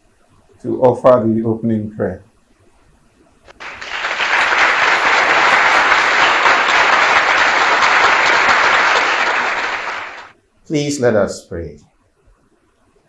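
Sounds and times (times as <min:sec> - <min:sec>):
audience applauding: 0:03.5 - 0:10.3.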